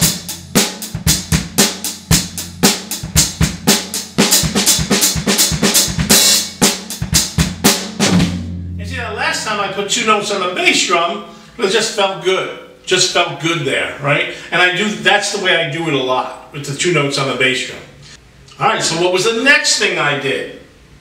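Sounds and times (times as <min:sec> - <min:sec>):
rock drum kit groove: 0:00.0 - 0:09.6
drum low ring: 0:07.0 - 0:09.8
man's voice: 0:08.8 - 0:17.9.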